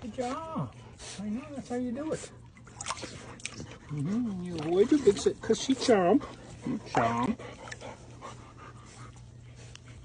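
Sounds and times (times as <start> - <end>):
low steady hum: 0.0 - 10.0
puppy panting: 0.0 - 10.0.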